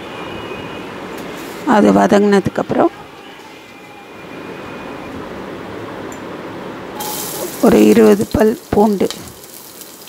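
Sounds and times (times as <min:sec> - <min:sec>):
spices sizzling in hot oil: 0:07.0 - 0:10.0.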